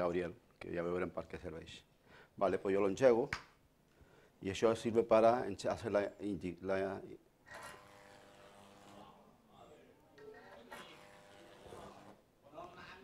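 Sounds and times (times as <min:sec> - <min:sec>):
electric arc buzzing: 0:07.5 - 0:09.2, 0:10.6 - 0:12.2.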